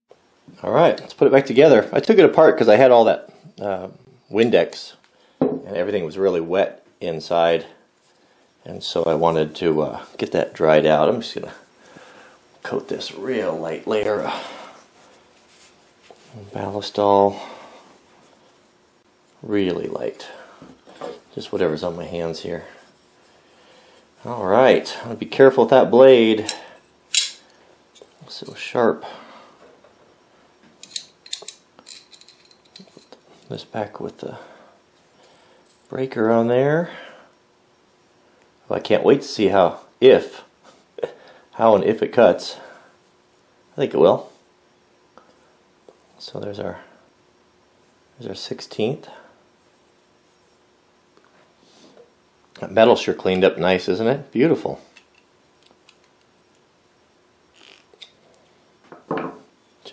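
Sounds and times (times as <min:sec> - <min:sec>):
steel parts scraping: 0:30.8 - 0:33.2.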